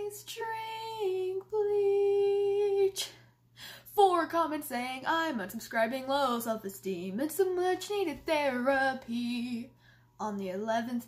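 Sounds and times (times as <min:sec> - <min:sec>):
woman singing unaccompanied: 0:00.0 - 0:03.2, 0:03.9 - 0:11.0.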